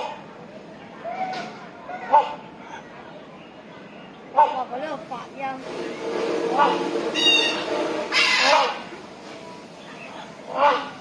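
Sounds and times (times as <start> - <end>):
hornbill honk: 5.6 - 9.0, 10.5 - 11.0.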